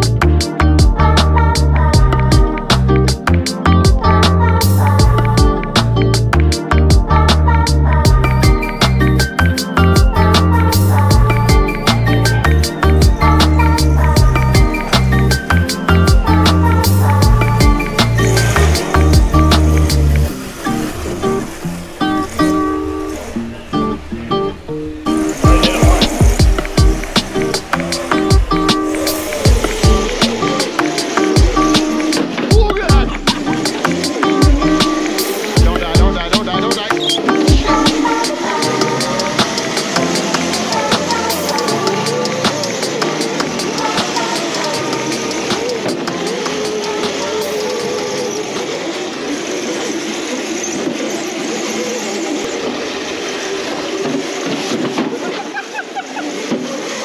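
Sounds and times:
music with thumping beat: 0:00.0 - 0:20.2, 0:25.1 - 0:47.6
electric karts whirring and skidding: 0:00.0 - 0:57.0
voices: 0:00.0 - 0:57.0.

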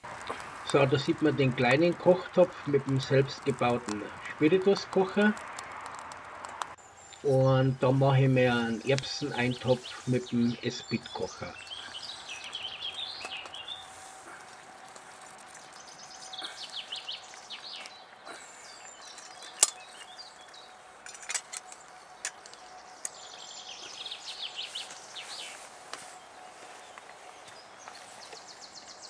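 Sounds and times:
songbird singing: 0:00.0 - 0:06.1, 0:06.7 - 0:29.0.

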